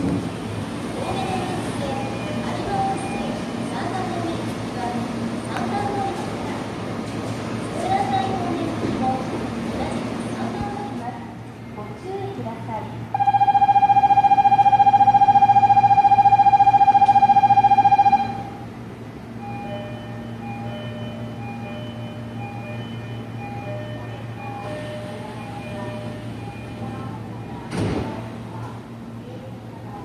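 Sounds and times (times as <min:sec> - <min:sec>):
station departure bell ringing: 0:01.2 - 0:04.3, 0:13.1 - 0:18.7, 0:19.3 - 0:27.7
short electronic warning tones: 0:13.1 - 0:18.6, 0:19.4 - 0:27.6
sliding doors closing thud: 0:27.7 - 0:28.2.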